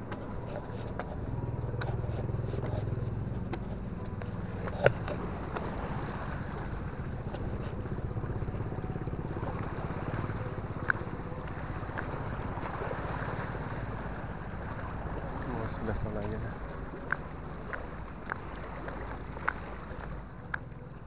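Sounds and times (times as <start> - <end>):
engine droning steadily: 0.0 - 21.0.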